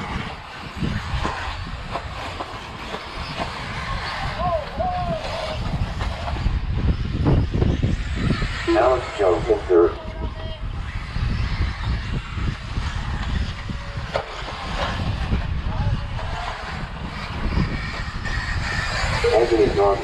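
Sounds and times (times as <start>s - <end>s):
wind buffeting microphone: 0.0s - 20.0s
people talking: 4.4s - 5.7s, 8.6s - 10.7s, 19.1s - 20.0s.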